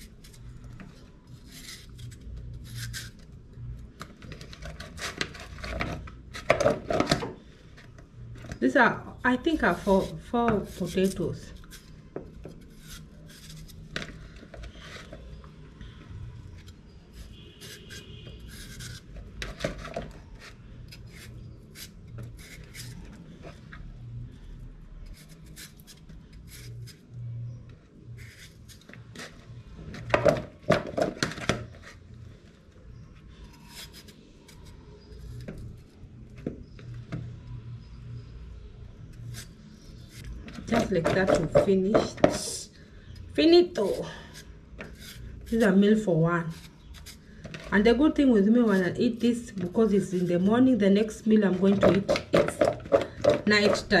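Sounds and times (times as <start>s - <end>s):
knife cutting potatoes: 51.4s - 54.0s.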